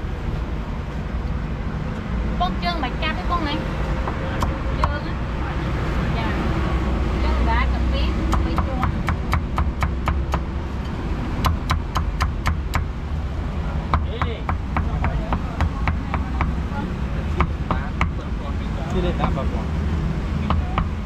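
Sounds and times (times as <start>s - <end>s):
cleaver chopping meat: 8.3s - 10.5s.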